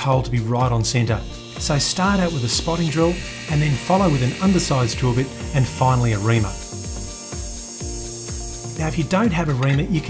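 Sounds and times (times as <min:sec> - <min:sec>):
background music: 0:00.0 - 0:10.0
lathe drilling metal: 0:00.9 - 0:09.6.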